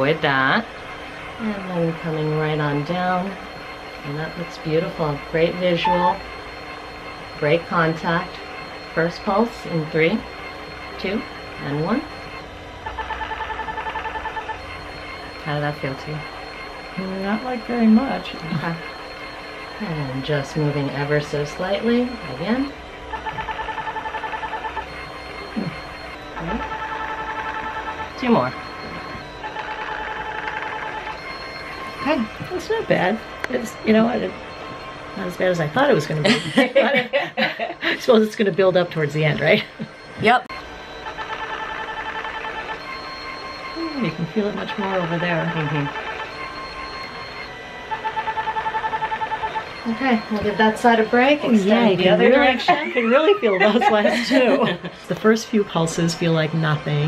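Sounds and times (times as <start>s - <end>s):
ultrasound device beeping: 0.0s - 57.0s.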